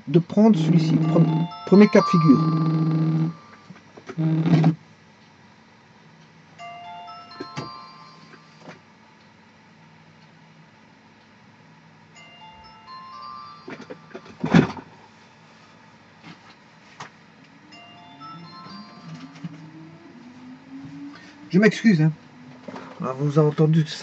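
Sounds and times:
electronic beeping tune: 0:00.6 - 0:03.6, 0:17.6 - 0:21.8.

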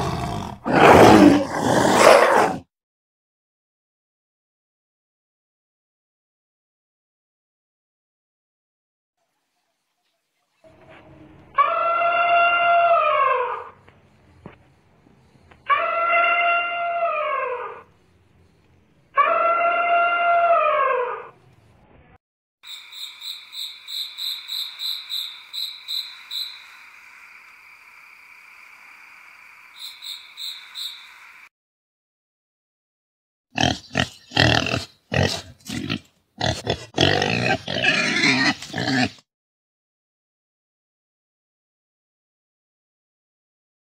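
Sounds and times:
elephant trumpeting: 0:11.5 - 0:13.8
wild boar grunting: 0:33.6 - 0:39.2.

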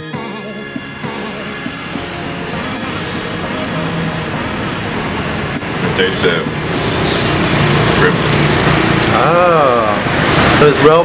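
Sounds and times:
background music: 0:00.0 - 0:10.2
passing road traffic: 0:00.4 - 0:11.0.

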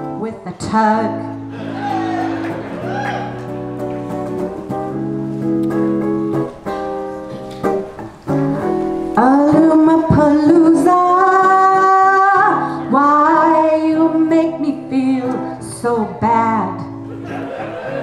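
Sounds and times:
electric guitar strumming chords: 0:01.0 - 0:17.3.

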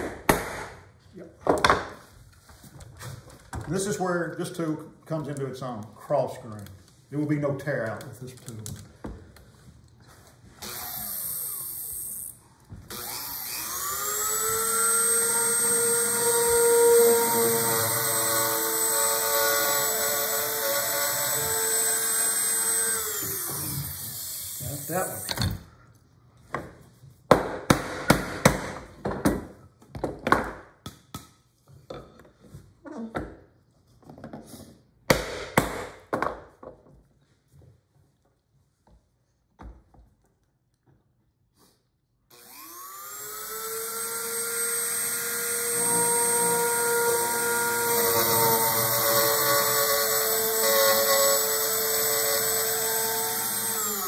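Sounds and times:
router motor cutting wood: 0:12.9 - 0:25.4, 0:42.3 - 0:54.0.

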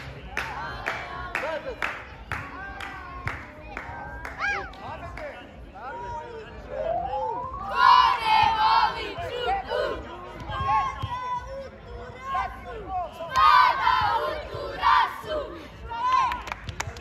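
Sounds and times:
boys shouting a cheer in unison: 0:07.6 - 0:11.4, 0:12.2 - 0:16.3.

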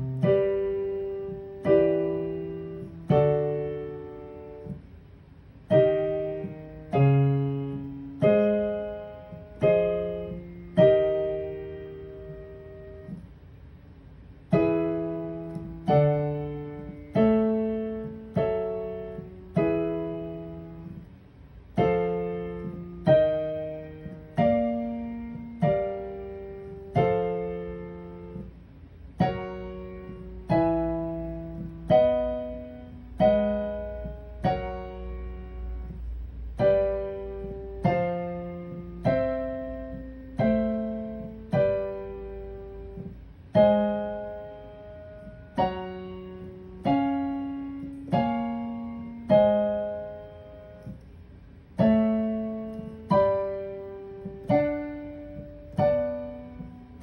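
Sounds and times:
piano block chords: 0:00.0 - 0:57.0.

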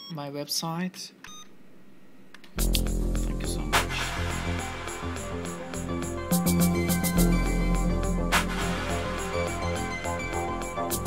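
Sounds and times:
music with heavy bass: 0:02.6 - 0:11.0.

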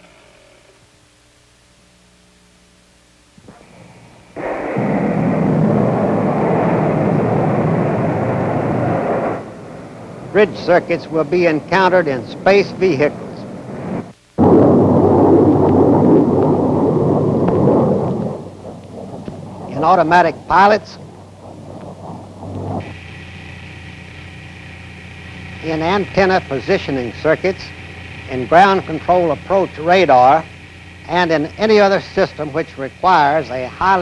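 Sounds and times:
old film soundtrack hum and hiss: 0:00.0 - 0:34.0
jet aircraft flying past: 0:04.3 - 0:34.0.

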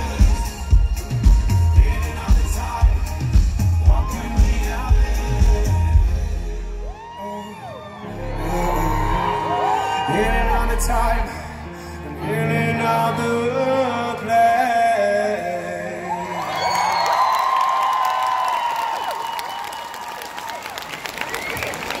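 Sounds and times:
crowd cheering and clapping: 0:00.0 - 0:11.4, 0:16.1 - 0:22.0
live band with singing: 0:00.0 - 0:17.2.

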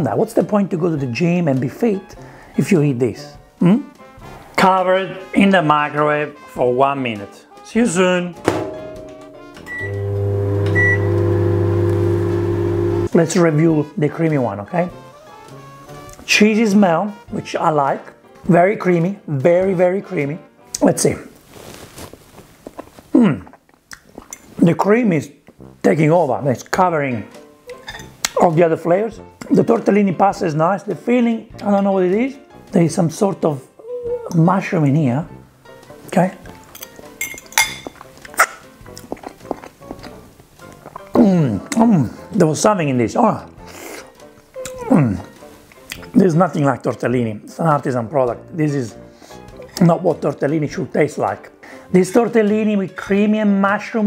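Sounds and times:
background music: 0:00.0 - 0:21.4, 0:24.2 - 0:54.0
keypad beep: 0:09.7 - 0:10.0
microwave oven humming: 0:09.7 - 0:13.1
person chewing pasta: 0:22.4 - 0:24.4, 0:37.8 - 0:41.8.

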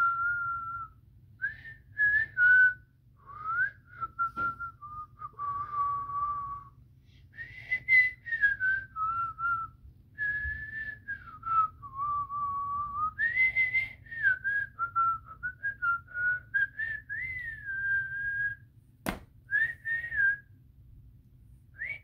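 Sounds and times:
boy whistling a tune: 0:00.0 - 0:18.7, 0:19.5 - 0:20.6, 0:21.8 - 0:22.0.

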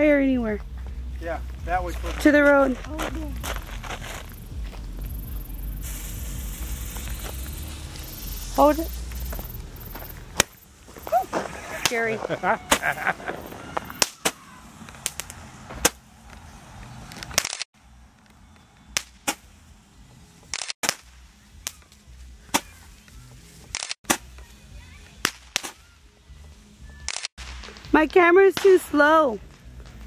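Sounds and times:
firework cracking and popping: 0:02.7 - 0:17.7, 0:18.9 - 0:19.6, 0:20.4 - 0:25.9, 0:27.0 - 0:30.0.

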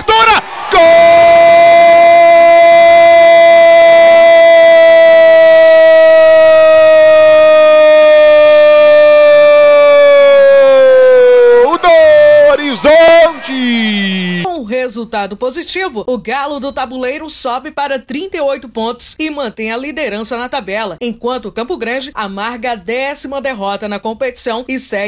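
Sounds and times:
man shouting words: 0:00.0 - 0:04.2, 0:11.6 - 0:14.5
commentator's prolonged goal cry: 0:00.0 - 0:14.5.

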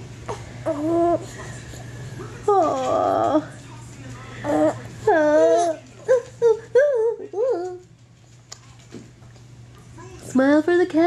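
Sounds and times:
baby cooing: 0:00.3 - 0:01.3.

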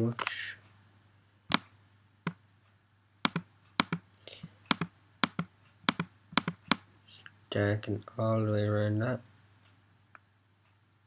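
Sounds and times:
computer mouse clicking: 0:03.3 - 0:04.0, 0:04.7 - 0:06.8.

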